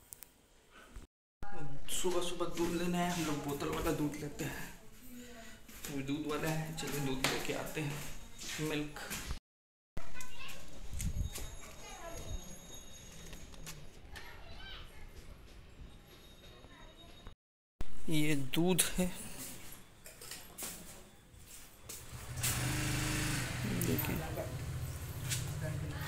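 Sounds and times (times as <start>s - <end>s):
vehicle engine running: 22.0s - 26.0s
voices outdoors: 23.5s - 26.0s.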